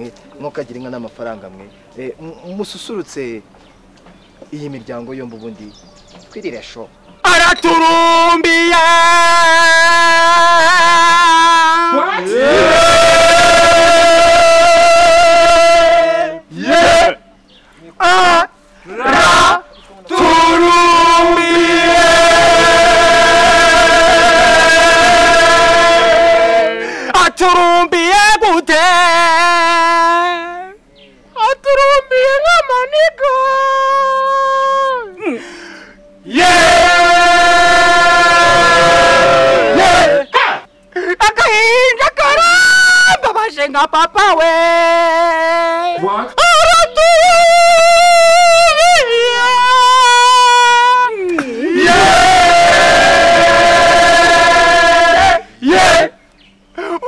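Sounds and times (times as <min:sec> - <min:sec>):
man singing into a microphone: 0:07.2 - 0:12.0, 0:27.1 - 0:30.8, 0:41.4 - 0:51.3
men singing unaccompanied: 0:07.2 - 0:17.3, 0:18.0 - 0:30.8, 0:36.2 - 0:40.7, 0:41.4 - 0:56.2
group shouting along: 0:09.2 - 0:17.2, 0:18.9 - 0:26.9, 0:36.3 - 0:40.7, 0:48.7 - 0:56.2.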